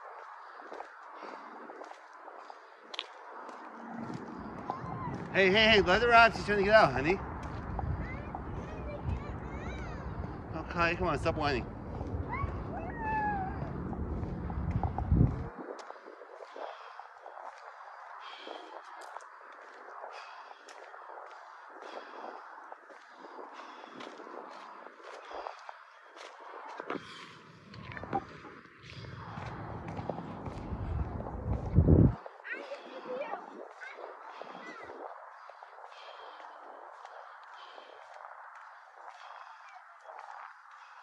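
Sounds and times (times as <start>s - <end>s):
low microphone rumble: 3.7s - 17.4s, 26.8s - 33.7s
small dog whining: 12.3s - 13.7s.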